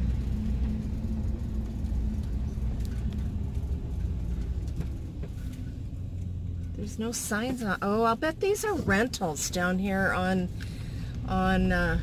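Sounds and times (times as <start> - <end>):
van engine rumble and road noise: 0.0 - 12.0.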